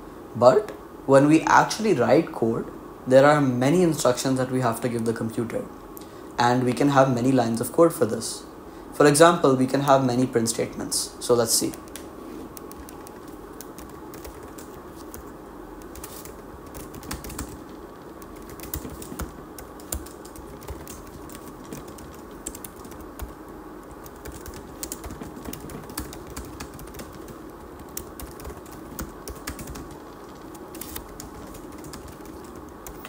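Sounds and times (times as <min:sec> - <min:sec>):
faint background hum: 0:00.0 - 0:33.0.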